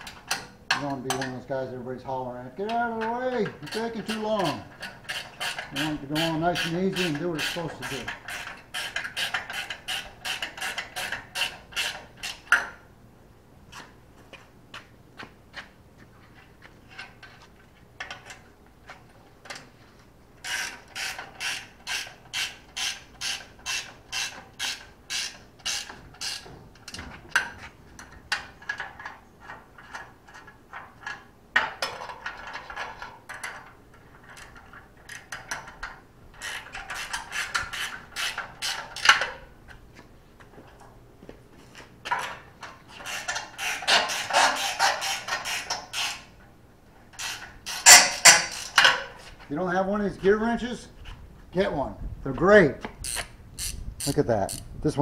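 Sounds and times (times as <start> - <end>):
ratcheting wrench clicking: 20.4 - 26.4, 36.4 - 39.3, 43.0 - 46.3, 47.2 - 49.0, 53.0 - 54.7.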